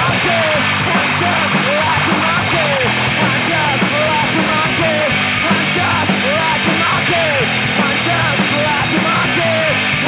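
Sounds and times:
distorted punk rock band: 0.0s - 10.0s.

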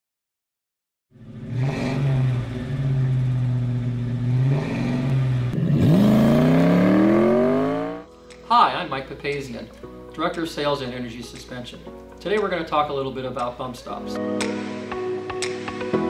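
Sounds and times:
car engine revving: 1.2s - 8.1s.

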